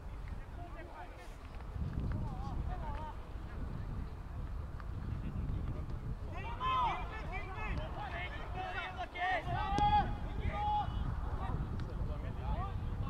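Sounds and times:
footballers shouting: 6.3 - 11.6.

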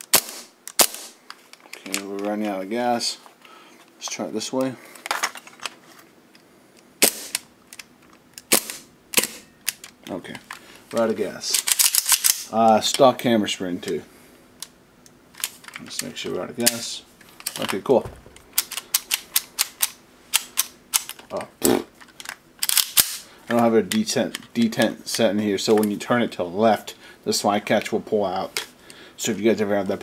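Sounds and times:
airsoft pistol shots: 0.1 - 1.2, 7.0 - 7.4, 8.5 - 9.4, 18.0 - 19.7
airsoft pistol action clicking: 18.2 - 21.2.

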